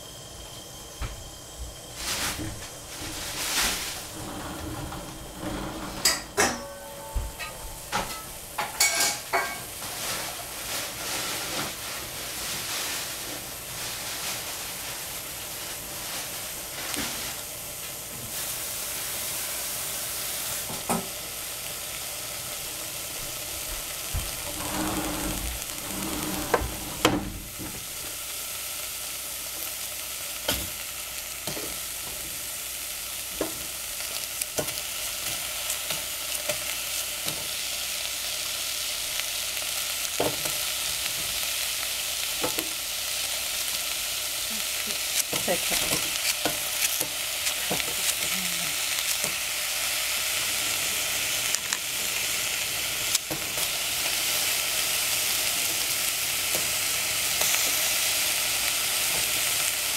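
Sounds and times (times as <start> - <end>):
vegetables sizzling in a pan: 0.0 - 59.9.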